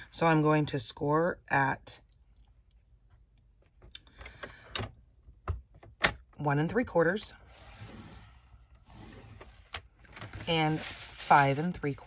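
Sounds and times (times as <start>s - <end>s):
paper rustling: 10.0s - 12.0s.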